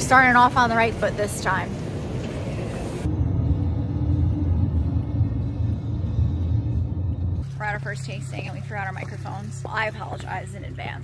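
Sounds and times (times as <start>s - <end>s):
car interior rumble: 2.4s - 9.9s.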